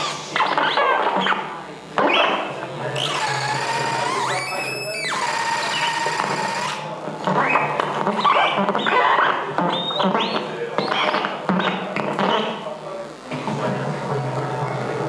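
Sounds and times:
squealing noise instrument: 0.0 - 12.7.

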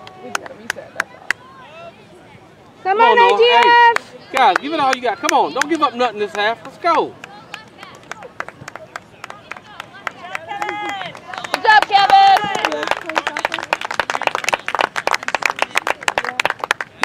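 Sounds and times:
spectators shouting and cheering: 0.0 - 13.3
fast hand clapping: 3.6 - 17.0.

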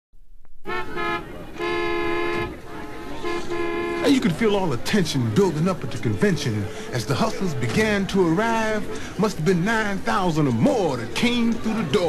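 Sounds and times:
faint street noise: 0.4 - 12.0
car horns honking: 0.6 - 5.5.

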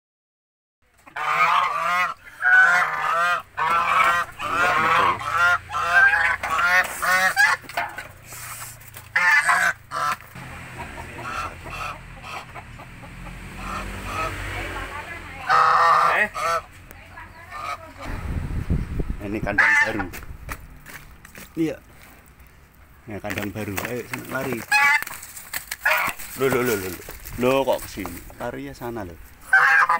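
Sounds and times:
geese honking: 1.0 - 18.1, 19.5 - 20.2, 24.2 - 27.2, 29.4 - 29.9.

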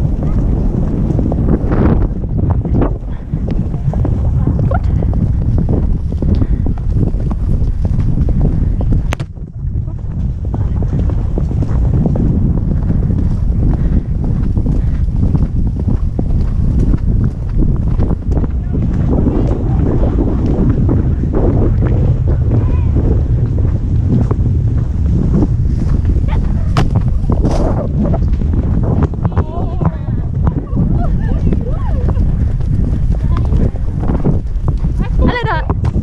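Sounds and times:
horse hoofbeats on dirt: 0.0 - 36.0
wind buffeting microphone: 0.0 - 36.0.

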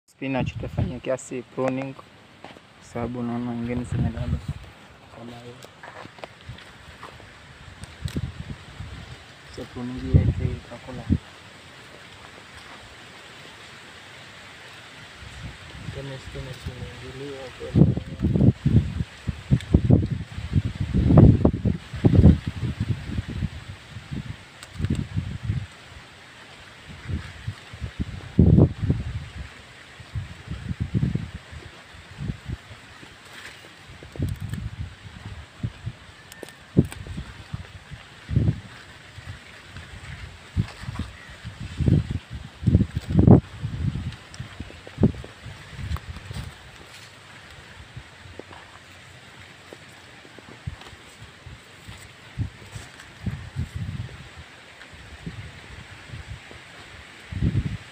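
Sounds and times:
wind gusts on microphone: 0.2 - 2.0, 2.8 - 11.4, 14.8 - 57.9
leaves rustling: 0.2 - 57.9.

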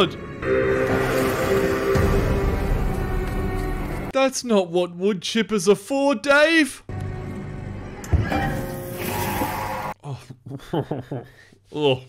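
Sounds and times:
horror film music: 0.0 - 4.1, 6.9 - 10.0.

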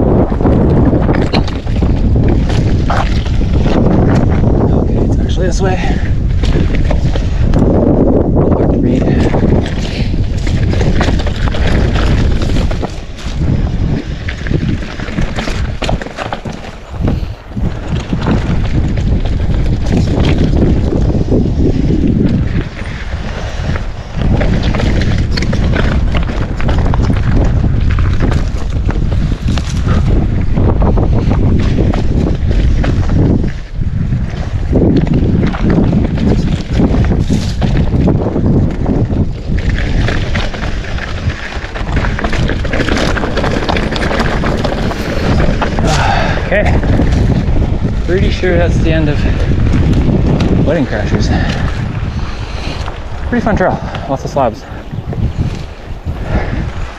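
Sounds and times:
bike rattling over rough ground: 0.0 - 56.9
wind buffeting microphone: 0.0 - 56.9.

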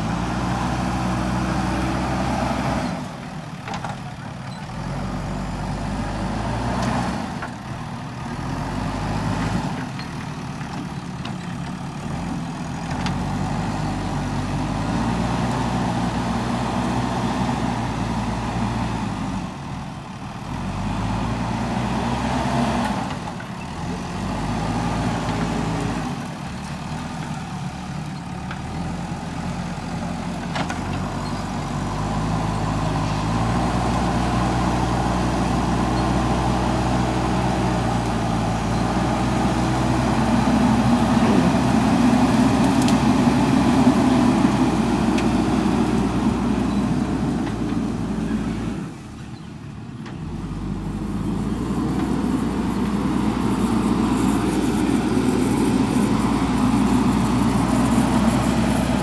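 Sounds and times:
diesel engine revving under load: 0.0 - 59.0.

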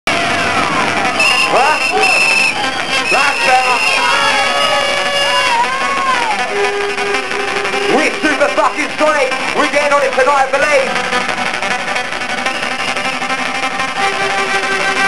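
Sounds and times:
people shouting: 0.1 - 6.9
hardcore rave music: 0.1 - 15.0.

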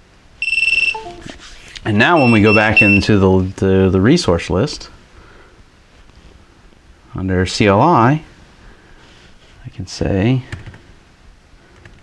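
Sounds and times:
falling two-note computer chime: 0.4 - 1.4
high electronic beep: 0.4 - 1.4, 2.0 - 3.1.

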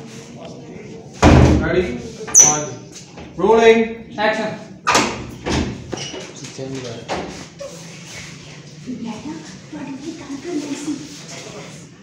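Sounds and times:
wooden door slamming: 1.2 - 1.8, 4.9 - 5.9.

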